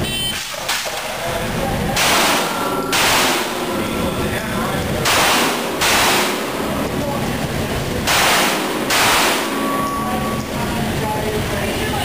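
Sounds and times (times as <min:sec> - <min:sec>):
pistol shots echoing: 0:02.0 - 0:03.8, 0:05.0 - 0:06.8, 0:08.0 - 0:09.8
shot timer beep: 0:09.5 - 0:10.5.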